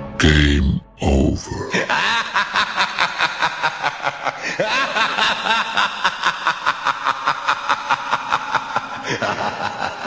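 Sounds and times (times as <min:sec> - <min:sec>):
person chuckling: 0:01.3 - 0:02.3.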